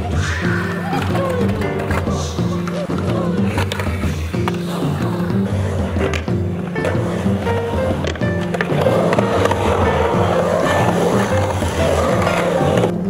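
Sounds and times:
music with steady bass line: 0.0s - 13.0s
skateboard wheels rolling on concrete: 0.0s - 13.0s.

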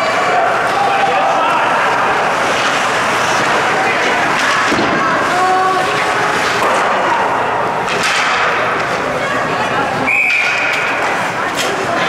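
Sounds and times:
ice rink game noise: 0.0s - 12.0s.

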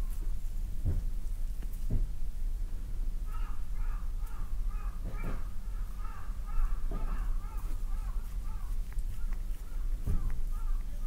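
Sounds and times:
soft thuds: 0.8s - 2.2s, 10.0s - 10.5s.

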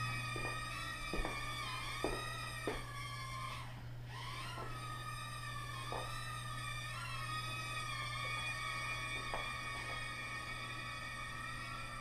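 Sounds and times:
small drone motors whining: 0.0s - 12.0s.

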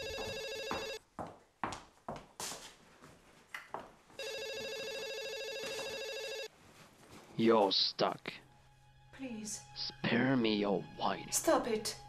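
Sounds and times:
electronic telephone ring: 0.0s - 1.0s, 4.2s - 6.5s.

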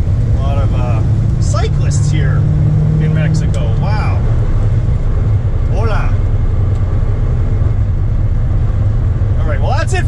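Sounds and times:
car engine drone from inside cabin: 0.0s - 10.0s.

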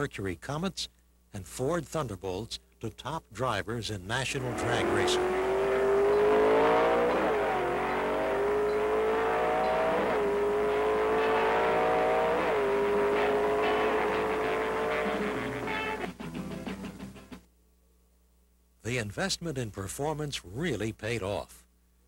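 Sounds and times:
drag racing car engine accelerating: 4.3s - 16.2s.

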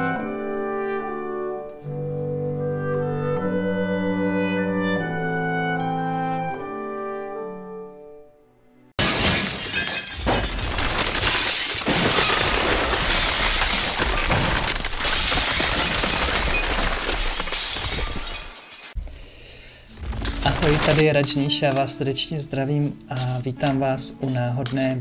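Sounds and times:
music: 0.0s - 9.0s, 19.0s - 25.0s
glass shattering: 9.0s - 19.0s, 20.0s - 21.5s.

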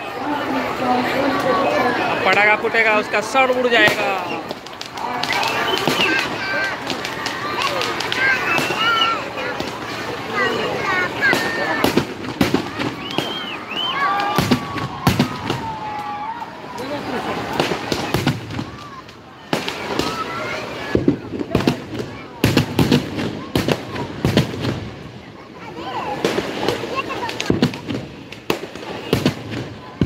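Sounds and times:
crowd chatter and shouting: 0.0s - 30.0s
firecrackers bursting: 0.0s - 30.0s.

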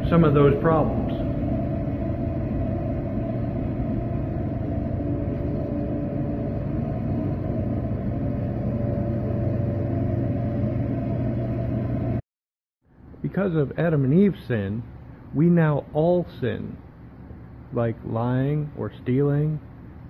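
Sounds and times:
low rumbling drone: 0.0s - 12.2s.

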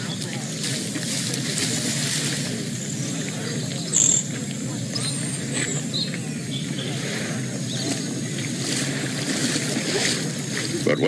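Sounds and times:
running river water: 0.0s - 11.0s
high bird chirps: 3.6s - 6.9s.

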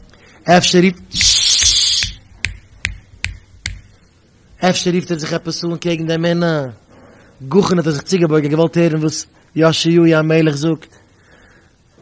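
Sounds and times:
man snapping fingers: 1.2s - 3.9s.

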